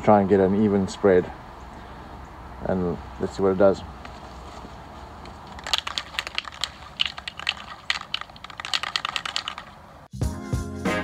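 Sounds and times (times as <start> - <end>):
spray can mixing ball rattling: 5.2 - 9.8.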